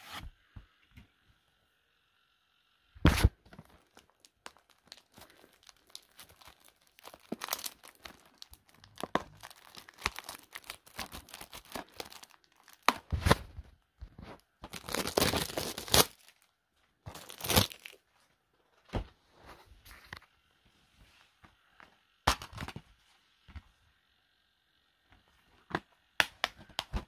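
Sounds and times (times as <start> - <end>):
plastic wrapping tearing and crinkling: 3.6 - 13.4, 14.7 - 16.5, 17.1 - 18.0.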